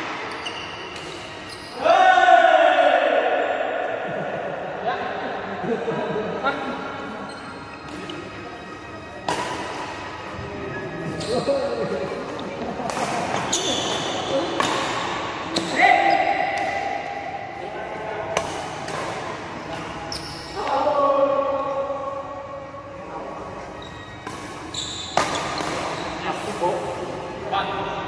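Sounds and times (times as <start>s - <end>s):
sneakers squeaking on floor: 0.0s - 2.0s, 7.2s - 11.9s, 13.0s - 16.5s, 19.7s - 20.9s, 23.6s - 26.7s
racket striking shuttlecock: 9.2s - 10.1s, 12.9s - 15.8s, 18.3s - 20.0s, 24.2s - 26.0s.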